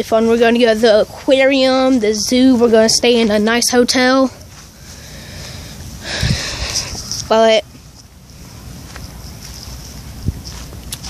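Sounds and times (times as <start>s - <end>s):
wind rumbling on microphone: 5.5s - 11.0s.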